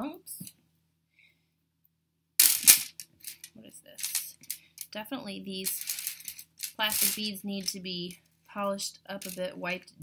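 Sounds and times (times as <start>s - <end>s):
metal chain clattering on plastic tray: 5.7s - 7.2s.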